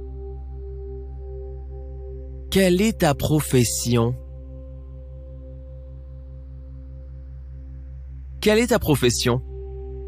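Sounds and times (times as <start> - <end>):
ambient drone music: 0.0 - 8.7, 9.4 - 10.0.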